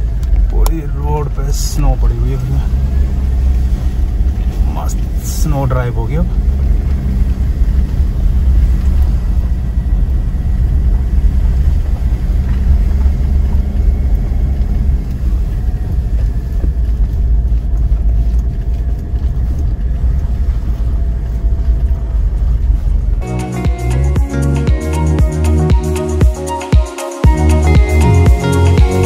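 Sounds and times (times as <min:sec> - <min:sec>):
vehicle engine and road rumble: 0:00.0 - 0:26.6, 0:27.3 - 0:29.0.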